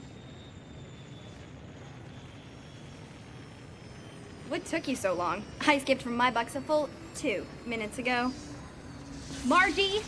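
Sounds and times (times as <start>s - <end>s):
faint high whine: 0.0s - 10.0s
low background hum: 0.0s - 10.0s.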